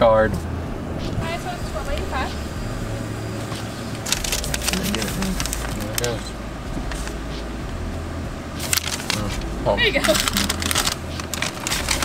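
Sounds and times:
vehicle engine idling: 0.0 - 12.0
paper receipt crackling: 4.0 - 6.3, 8.6 - 12.0.

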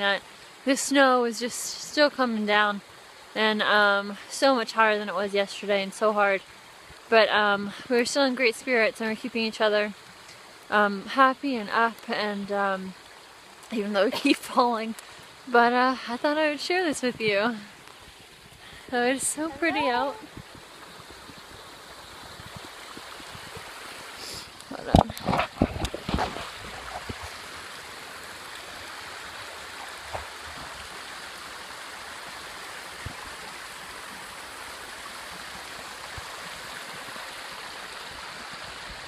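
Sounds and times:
brook rushing over rocks: 16.9 - 39.0.

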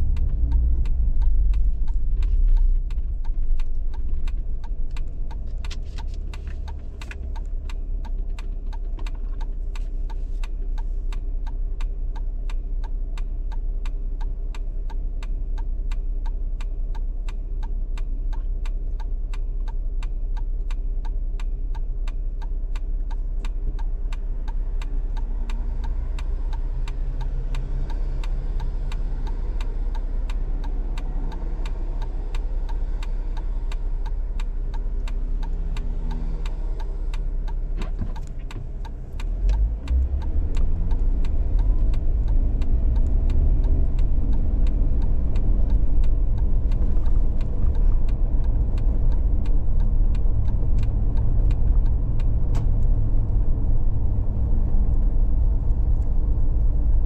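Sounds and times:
car driving with road noise: 0.0 - 57.0
car engine idling: 0.0 - 57.0
faint regular ticking: 0.0 - 57.0.

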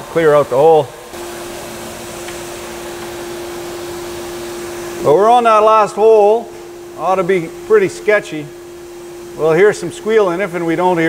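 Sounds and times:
coolant spray hiss: 0.0 - 11.0
milling machine whine: 0.0 - 11.0.

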